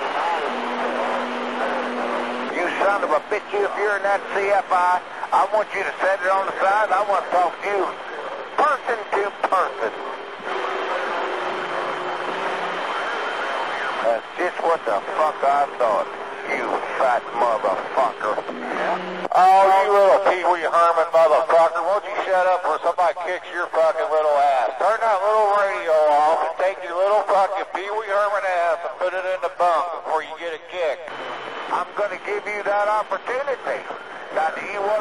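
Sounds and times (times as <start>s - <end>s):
radio static hiss: 0.0s - 35.0s.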